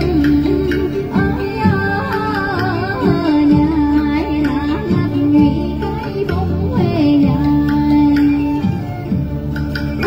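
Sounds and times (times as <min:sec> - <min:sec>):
backing music over loudspeakers: 0:00.0 - 0:10.0
woman singing into microphone: 0:00.0 - 0:10.0.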